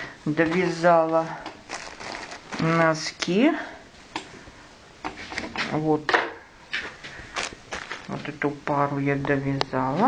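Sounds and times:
handling rustling and scuffing: 0.4s - 3.0s, 6.7s - 8.5s.

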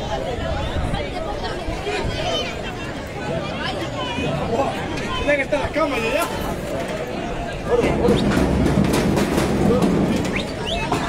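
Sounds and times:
crowd shouting: 7.2s - 11.0s.

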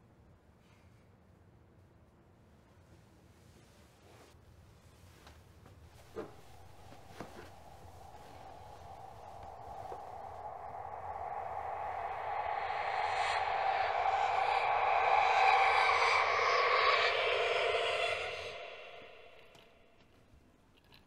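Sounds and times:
rushing noisy sound effect swell: 6.2s - 20.0s.

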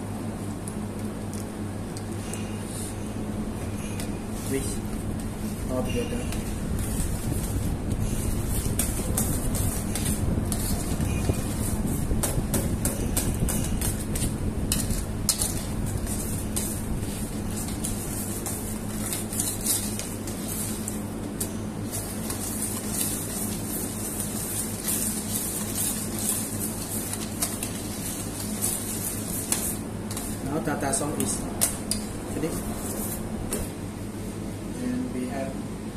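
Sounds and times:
steady low hum: 0.0s - 35.9s.

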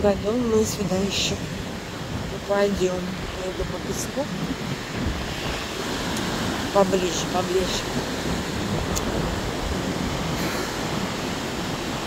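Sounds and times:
surf breaking on beach: 0.0s - 12.0s
wind buffeting microphone: 0.0s - 12.0s.

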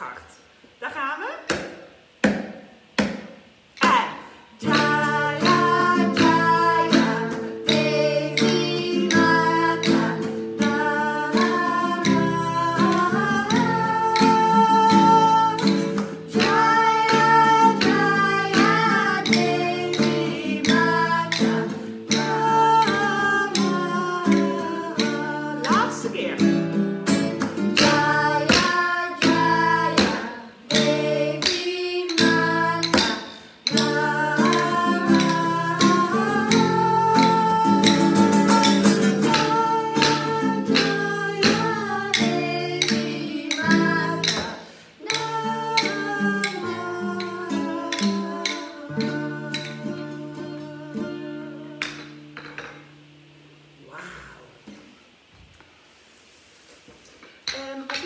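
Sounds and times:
acoustic guitar strummed: 2.3s - 53.9s
woman and children singing: 3.8s - 52.9s, 57.4s - 58.0s.

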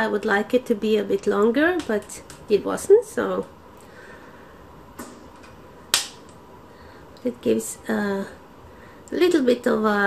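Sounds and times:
sharp snap-like click: 5.9s - 6.4s.

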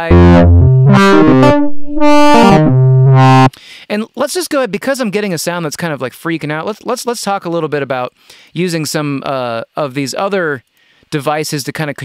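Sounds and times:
distorted synth notes with filter sweeps: 0.0s - 3.5s.

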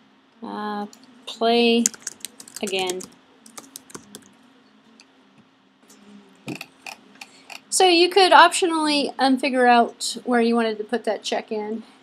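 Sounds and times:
typing on computer keyboard: 1.8s - 4.3s.

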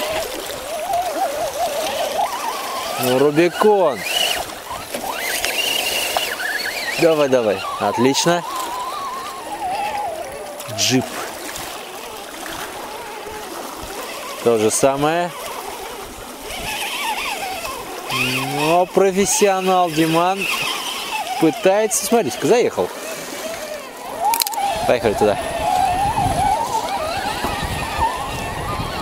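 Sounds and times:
electric motor whine: 0.0s - 29.0s.

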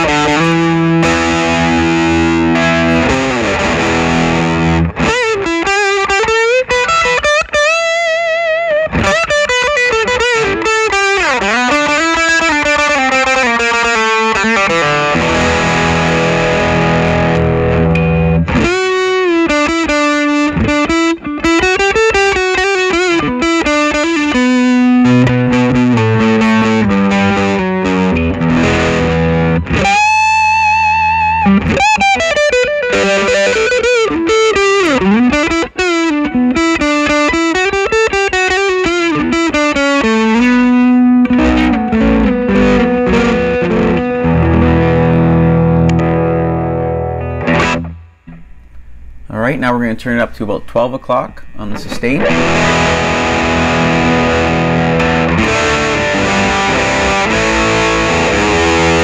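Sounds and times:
overdriven electric guitar lead: 0.0s - 49.3s, 50.5s - 59.0s.

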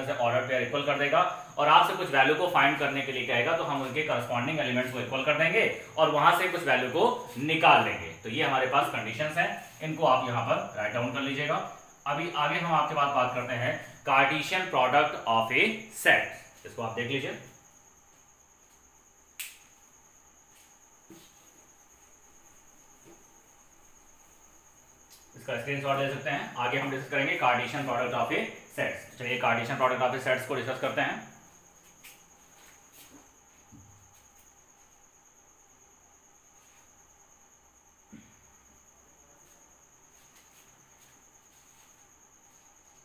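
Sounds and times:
sharp click: 19.4s - 19.8s.

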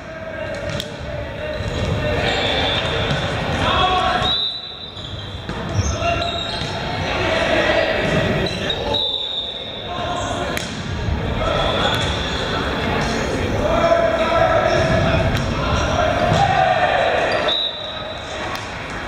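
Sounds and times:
many voices talking and calling: 0.0s - 19.0s.

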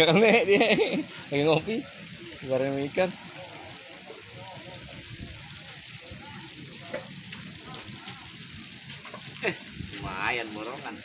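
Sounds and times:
steady outdoor hiss: 0.0s - 11.0s
water trickling: 0.0s - 11.0s
faint background voices: 3.1s - 11.0s.

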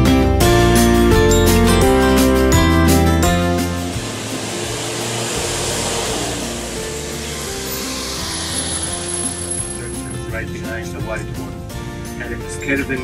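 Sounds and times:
street traffic passing: 1.9s - 12.1s.

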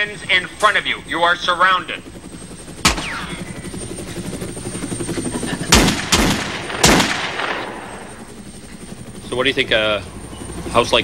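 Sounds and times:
gunshots echoing: 2.8s - 3.6s, 5.7s - 8.2s.

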